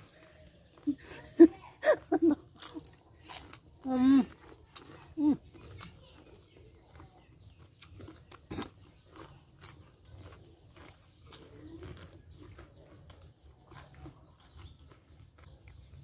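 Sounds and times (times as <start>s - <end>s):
crunchy chewing: 0.0s - 16.0s.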